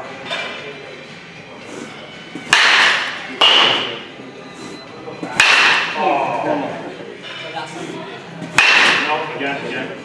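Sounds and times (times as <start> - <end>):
baseball bat hitting ball: 2.4 - 4.1, 5.3 - 6.1, 8.5 - 9.2.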